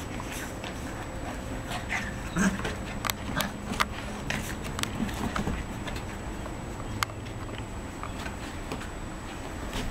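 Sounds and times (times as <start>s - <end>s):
paws scuffling on wooden decking: 0.0s - 7.4s
puppy vocalisation: 1.8s - 3.6s.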